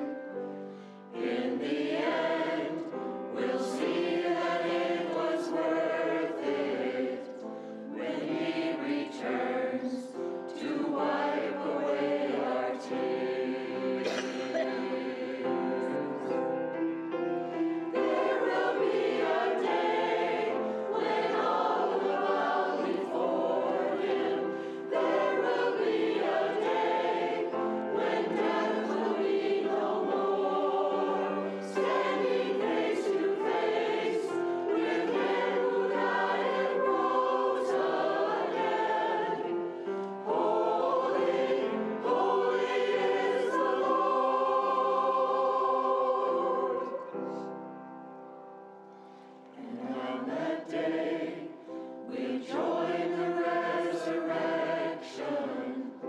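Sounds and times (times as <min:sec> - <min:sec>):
choir singing: 0:00.0 - 0:48.4, 0:49.1 - 0:56.0
piano accompaniment: 0:00.0 - 0:49.5.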